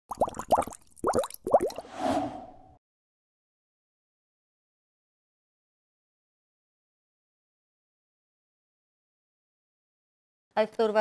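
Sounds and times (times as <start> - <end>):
rising bubbly pops: 0.0 - 1.9.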